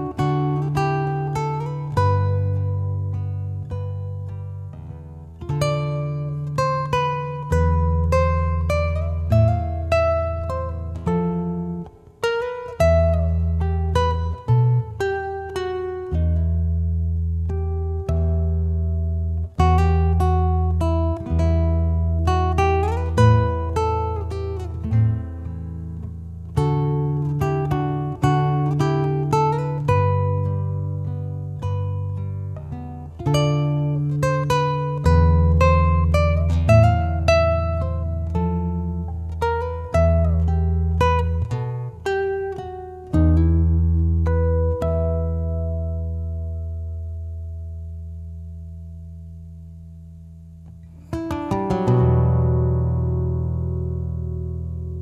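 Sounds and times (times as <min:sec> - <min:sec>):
fingerpicked classical guitar: 0:00.0 - 0:55.0.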